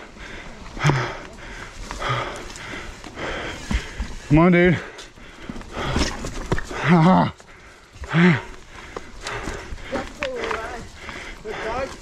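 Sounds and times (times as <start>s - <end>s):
mountain bike rattling over rocks: 0.2s - 12.0s.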